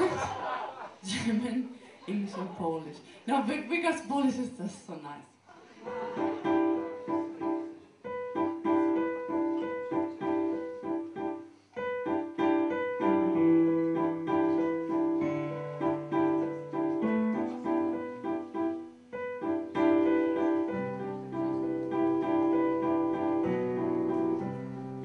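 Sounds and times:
electric piano repeated notes: 6.2 - 25.0.

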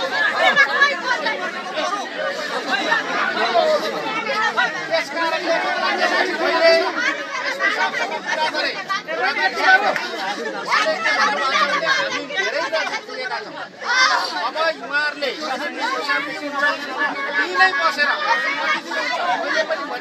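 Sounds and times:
voices chattering: 0.0 - 20.0.

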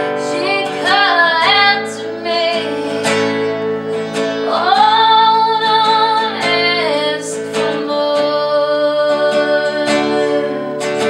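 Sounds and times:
strummed acoustic guitar: 0.0 - 11.0
woman singing: 0.0 - 11.0.

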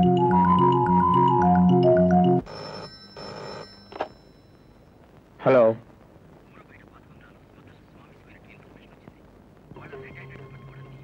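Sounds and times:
mallet percussion tune: 0.0 - 2.4
telephone ringing: 0.0 - 4.9.

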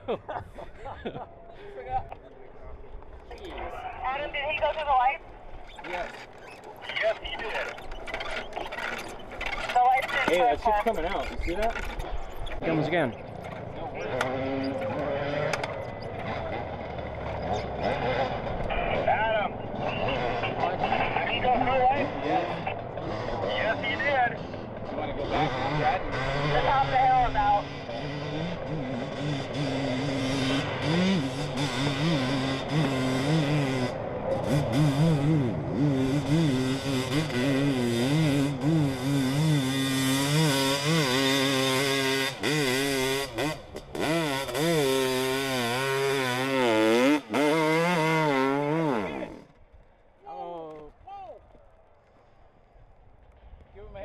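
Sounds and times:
dirt bike engine revving: 3.4 - 49.6.

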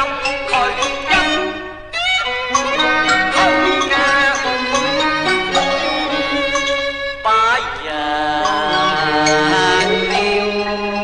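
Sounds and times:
opera singing with sliding notes: 0.0 - 11.0
traditional instrumental accompaniment: 0.0 - 11.0.

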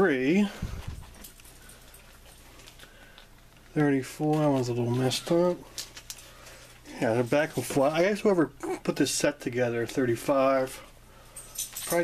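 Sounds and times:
soft ticks and rustles: 0.5 - 8.1.

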